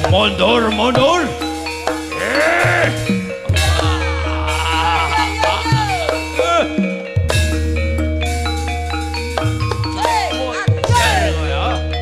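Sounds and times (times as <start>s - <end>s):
metallophone tones: 0.6s - 12.0s
person singing wavering line: 2.1s - 6.4s.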